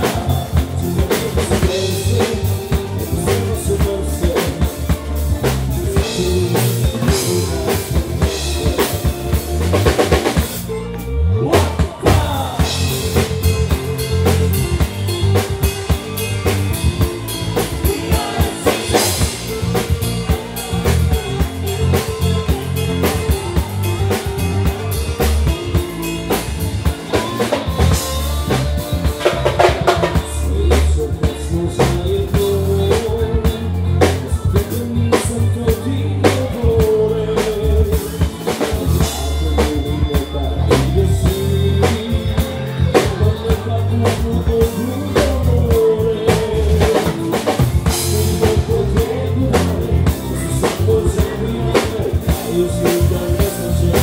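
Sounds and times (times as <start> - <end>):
bass and electric guitars: 0.0 - 54.0
bending melody line: 0.0 - 54.0
drum kit beat: 0.0 - 54.0.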